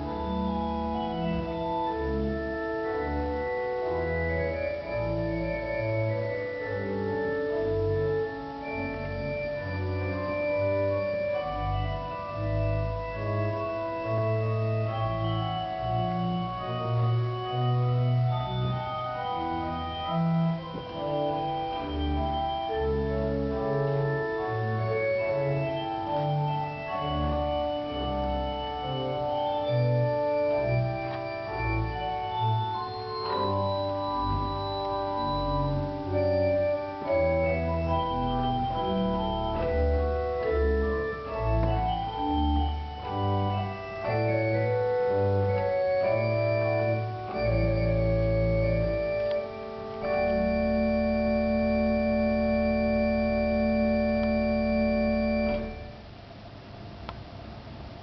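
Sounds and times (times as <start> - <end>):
pipe organ playing chords: 0.0 - 56.2.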